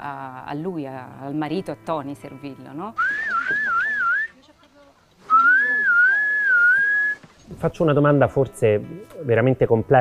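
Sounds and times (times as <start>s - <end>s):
person whistling a warbling phrase: 3.0s - 4.3s, 5.3s - 7.2s.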